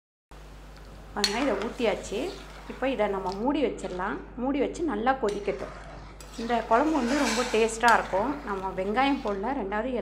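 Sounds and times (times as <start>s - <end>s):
woman speaking: 1.2s - 5.7s, 6.4s - 10.0s.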